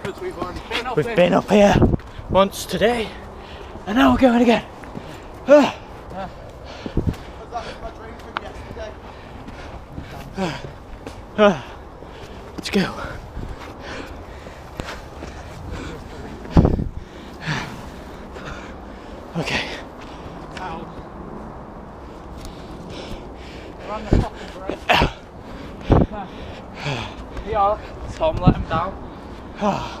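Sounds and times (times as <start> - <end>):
person breathing hard and gasping: 9.0 - 20.4, 22.4 - 28.1.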